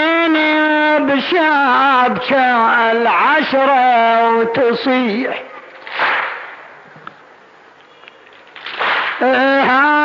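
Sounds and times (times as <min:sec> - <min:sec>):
hands slapping chests: 0:05.9 - 0:06.6, 0:08.6 - 0:09.2.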